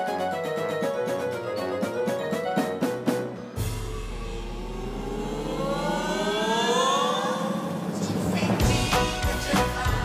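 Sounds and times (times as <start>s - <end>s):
synthesizer sweep rising in pitch: 3.5s - 8.4s
low bass drone: 3.6s - 8.0s.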